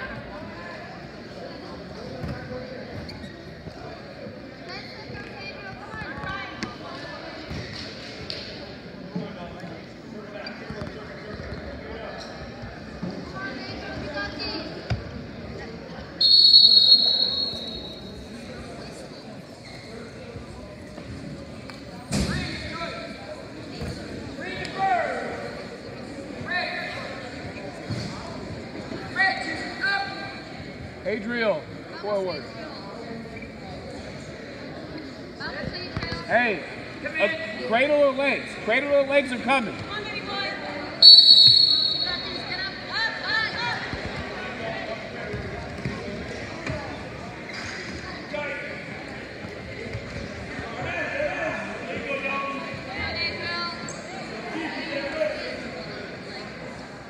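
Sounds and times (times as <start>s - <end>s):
referee's whistle: 16.2s - 18.1s, 41.0s - 42.4s.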